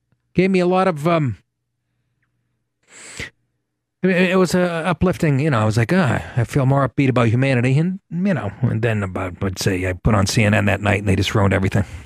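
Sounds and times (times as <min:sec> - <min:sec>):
man breathing: 0:01.8 - 0:03.5.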